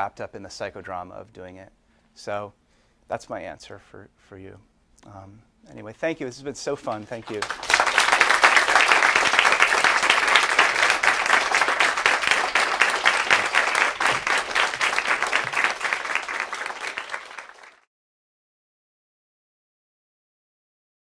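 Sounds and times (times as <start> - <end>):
audience applauding: 6.8 - 17.9.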